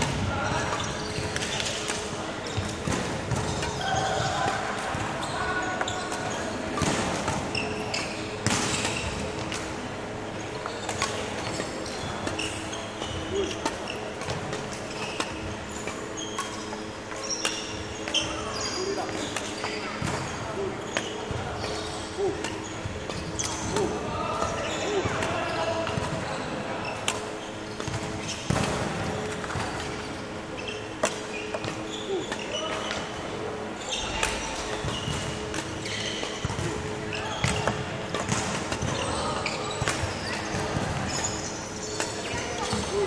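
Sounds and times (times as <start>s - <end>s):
racket hitting shuttlecock: 0.0s - 5.1s, 5.8s - 9.8s, 10.5s - 18.3s, 19.0s - 26.2s, 27.0s - 30.1s, 31.0s - 33.2s, 34.0s - 43.0s
voices in background: 0.0s - 43.0s
shoes squeaking on wooden floor: 29.9s - 33.0s.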